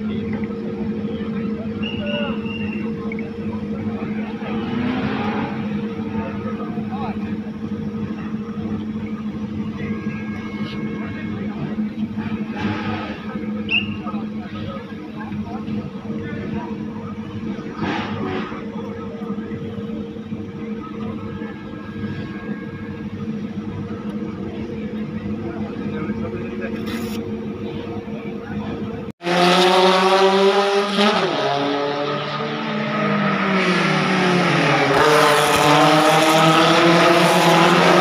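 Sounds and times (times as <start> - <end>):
people's voices: 0.0 - 29.1
race car engines idling: 0.0 - 29.2.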